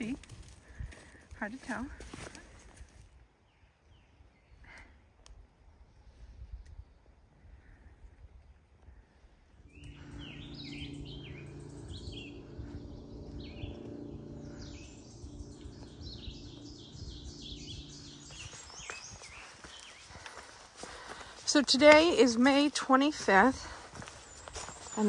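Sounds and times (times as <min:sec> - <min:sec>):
footsteps on dirt trail: 0:00.0 - 0:03.2, 0:09.7 - 0:25.0
steady low hum: 0:04.1 - 0:25.0
songbird chirping: 0:09.6 - 0:25.0.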